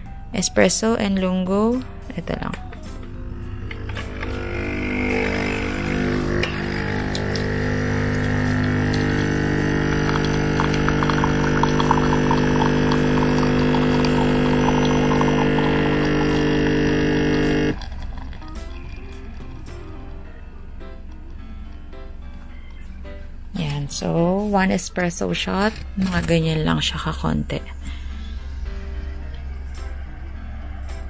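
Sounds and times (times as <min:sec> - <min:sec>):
coffee machine pump droning: 0:02.7 - 0:21.9
coffee spluttering into glass: 0:05.1 - 0:19.6.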